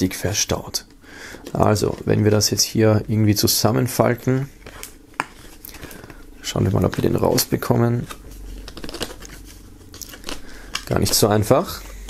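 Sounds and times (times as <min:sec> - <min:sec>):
card packaging scraping: 0:04.5 - 0:12.0.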